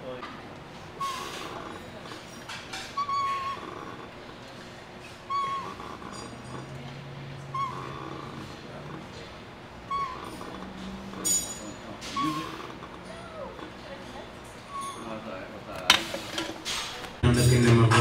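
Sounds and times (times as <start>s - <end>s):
exercise machine squeaking: 1.0s - 4.1s, 5.0s - 15.4s.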